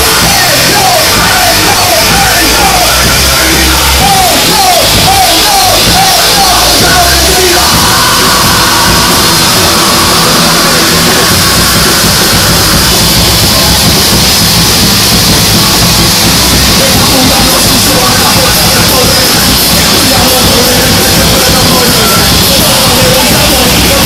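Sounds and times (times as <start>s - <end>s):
loud live rock band: 0.0s - 24.0s.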